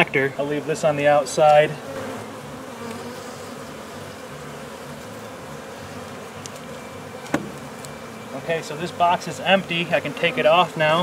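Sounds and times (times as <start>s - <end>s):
honey bees buzzing: 0.0s - 11.0s.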